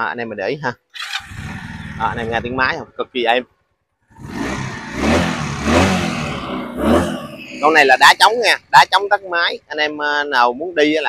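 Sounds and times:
motorcycle engine revving: 1.0 - 3.1, 4.0 - 8.4.

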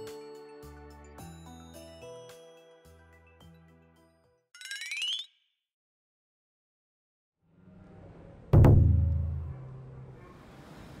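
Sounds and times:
background music: 0.0 - 4.4.

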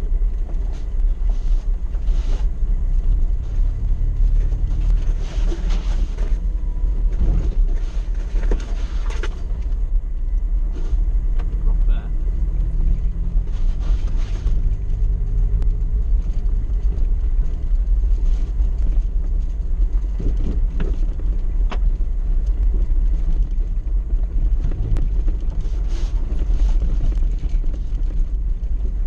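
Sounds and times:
vehicle rumble on dirt track: 0.0 - 29.0.

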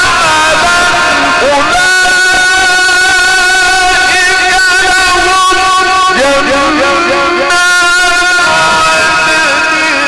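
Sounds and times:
man reciting in long sung note: 0.0 - 10.0.

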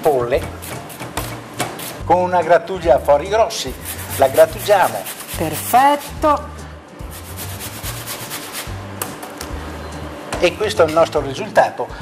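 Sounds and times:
background music with bass: 0.0 - 12.0
apple scraping on metal grater: 3.7 - 6.2.

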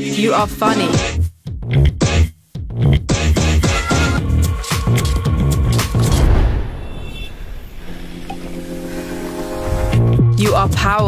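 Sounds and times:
low rumbling drone: 4.2 - 10.4.

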